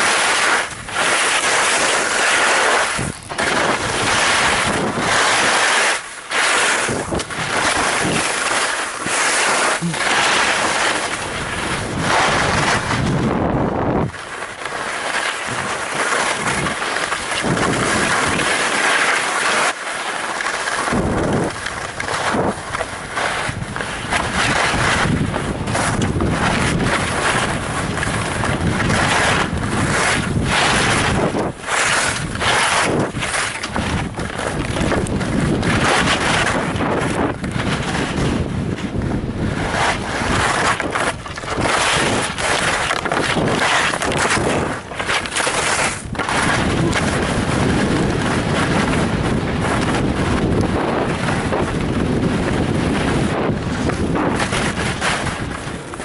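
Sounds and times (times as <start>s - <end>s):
wind rushing over microphone: 0.0s - 14.6s, 15.4s - 19.0s, 20.8s - 56.0s
skis scraping packed snow: 0.0s - 56.0s.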